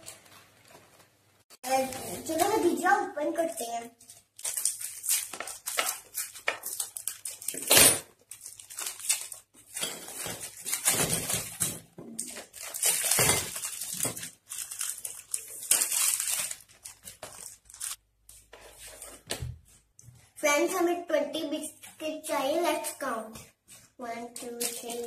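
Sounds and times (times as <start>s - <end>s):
plastic packets crinkling and tearing: 4.0s - 18.0s.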